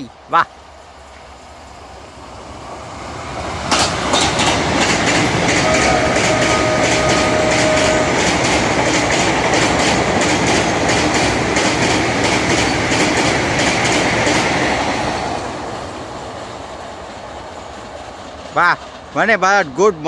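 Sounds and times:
train wheels clattering over rails: 0:03.3 - 0:20.0.

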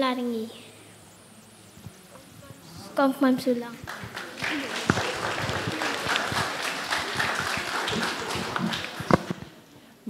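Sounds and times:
audience applauding: 0:03.8 - 0:09.5.

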